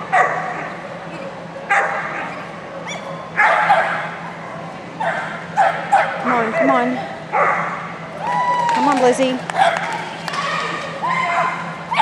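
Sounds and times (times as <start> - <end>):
low hum: 0.0 - 12.0
dog barking: 1.7 - 2.3, 2.9 - 4.1, 5.0 - 7.8.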